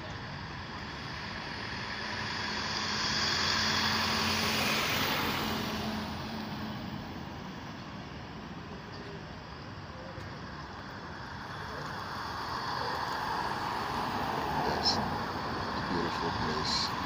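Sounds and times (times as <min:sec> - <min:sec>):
vehicle passing by: 0:00.9 - 0:07.4, 0:11.2 - 0:17.0.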